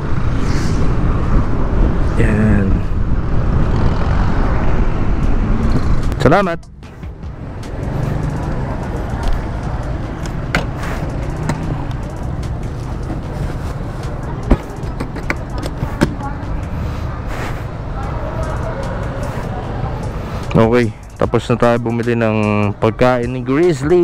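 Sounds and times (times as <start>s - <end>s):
street traffic: 0.0s - 24.0s.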